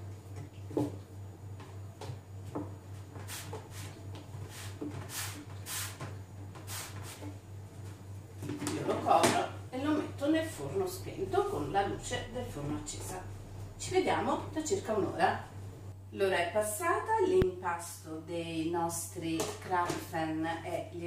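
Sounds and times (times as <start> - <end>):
steady low hum: 0.0 - 21.0
woman speaking: 8.8 - 21.0.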